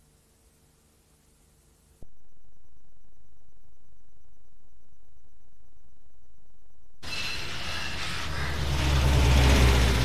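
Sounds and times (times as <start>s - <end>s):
vehicle engine rumbling: 6.1s - 10.0s
street traffic noise: 7.0s - 10.0s.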